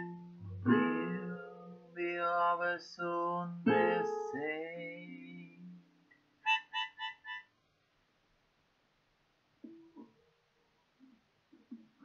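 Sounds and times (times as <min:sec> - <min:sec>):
acoustic guitar chord: 0:00.0 - 0:02.4, 0:03.5 - 0:05.8
man singing: 0:00.0 - 0:05.8.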